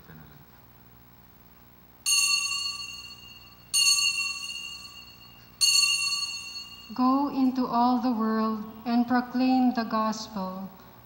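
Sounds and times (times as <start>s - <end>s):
altar bell ringing: 2.0s - 8.0s.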